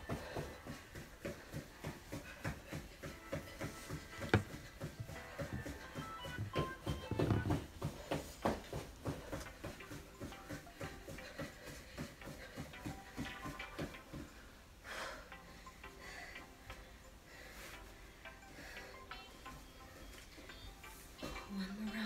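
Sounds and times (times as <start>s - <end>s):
muffled footfalls on carpet: 0.0s - 14.5s
background music with held tones: 0.0s - 22.0s.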